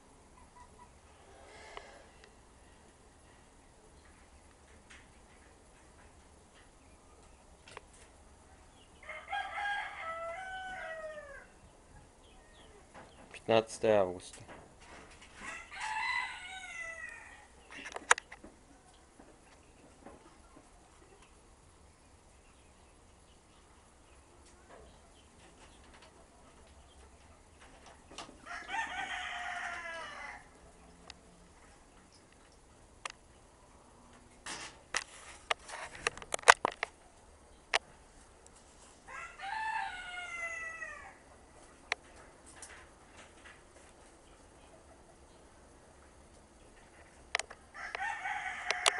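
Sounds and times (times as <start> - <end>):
rooster crowing: 9.0 - 11.6, 15.4 - 17.5, 28.4 - 30.6, 39.0 - 41.2, 47.7 - 48.9.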